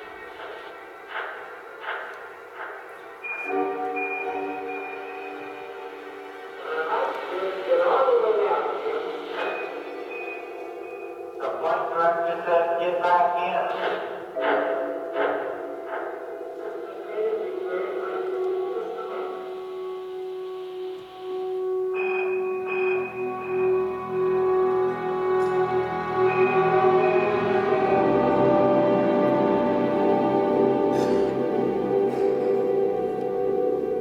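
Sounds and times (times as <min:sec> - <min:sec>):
orchestra sustained chord: 0:03.4 - 0:13.4, 0:16.4 - 0:34.0.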